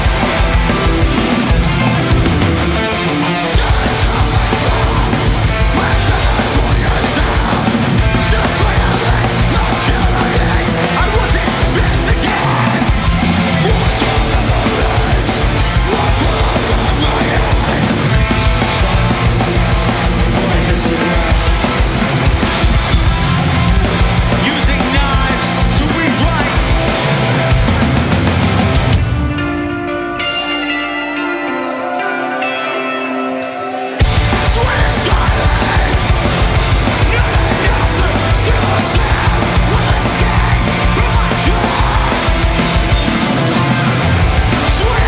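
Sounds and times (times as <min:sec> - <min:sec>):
distorted electric guitars: 0:00.0 - 0:45.0
drums: 0:00.0 - 0:45.0
metalcore band playing live: 0:00.0 - 0:45.0.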